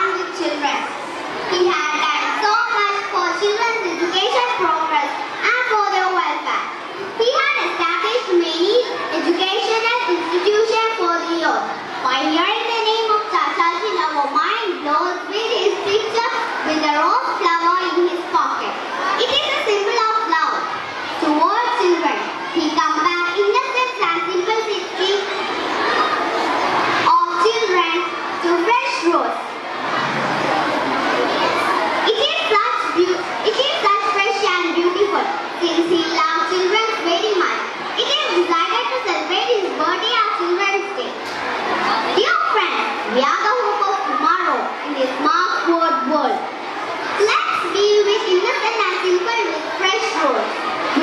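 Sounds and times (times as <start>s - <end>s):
girl speaking into microphone: 0.0s - 26.1s, 27.0s - 29.6s, 31.3s - 51.0s.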